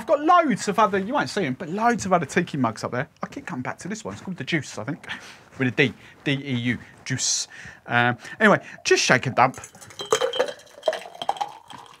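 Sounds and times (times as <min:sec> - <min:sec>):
liquid splashing: 0:08.5 - 0:12.0
ice rattling in metal shaker: 0:09.2 - 0:12.0.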